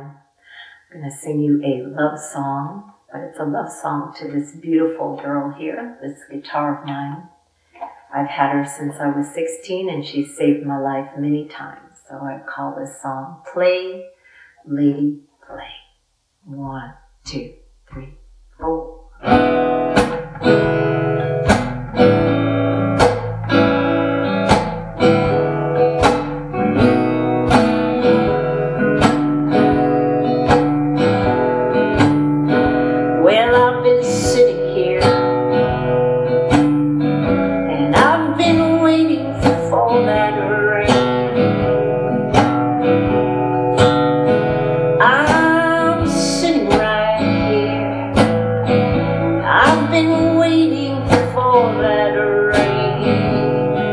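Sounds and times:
acoustic guitar strumming: 0:17.1 - 0:53.9
woman singing: 0:33.1 - 0:35.8, 0:37.7 - 0:41.7, 0:45.0 - 0:48.2, 0:49.4 - 0:53.9.

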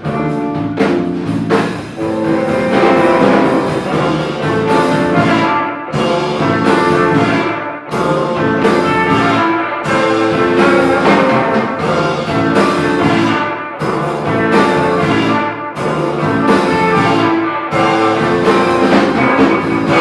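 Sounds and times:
live rock band playing: 0:00.0 - 0:20.0.

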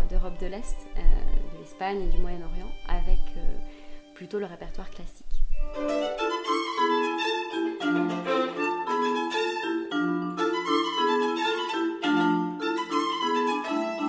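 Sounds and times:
bowed violin: 0:00.0 - 0:04.2, 0:05.7 - 0:14.0
vibraphone notes and chords: 0:05.5 - 0:14.0.

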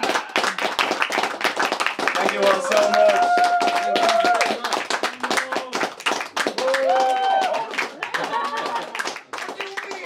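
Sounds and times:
audience clapping: 0:00.0 - 0:10.0
held cheer: 0:02.3 - 0:04.8, 0:06.5 - 0:10.0.

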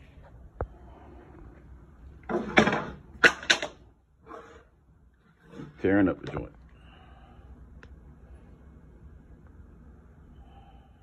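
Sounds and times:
objects clattering: 0:02.2 - 0:03.8.

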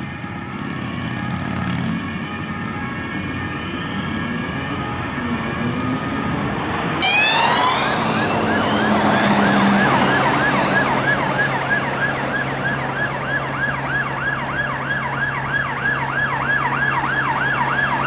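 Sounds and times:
police sirens yelping: 0:00.0 - 0:18.0.

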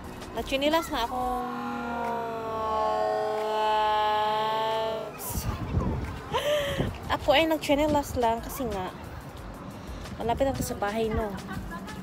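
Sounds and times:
steady siren-like tone: 0:01.1 - 0:05.6.

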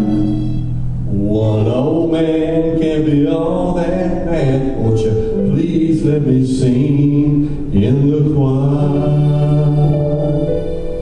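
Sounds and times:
band and singers sustaining chord: 0:00.0 - 0:11.0.

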